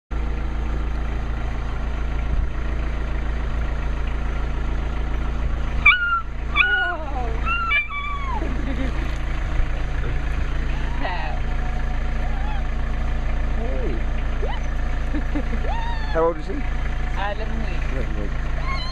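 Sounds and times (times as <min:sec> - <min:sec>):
steady low rumble: 0:00.2 - 0:18.9
puppy yelping whines: 0:05.8 - 0:08.5, 0:12.2 - 0:12.7, 0:14.4 - 0:14.8, 0:18.6 - 0:18.9.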